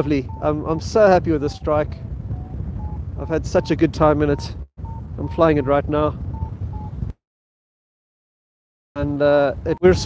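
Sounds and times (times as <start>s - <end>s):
wind rushing over microphone: 0.0s - 7.2s, 9.0s - 10.0s.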